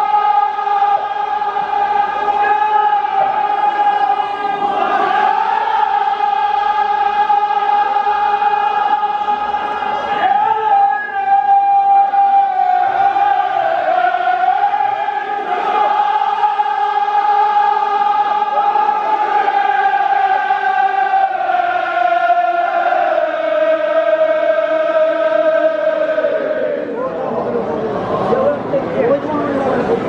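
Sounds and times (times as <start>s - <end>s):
men chanting in unison: 12.0s - 27.0s.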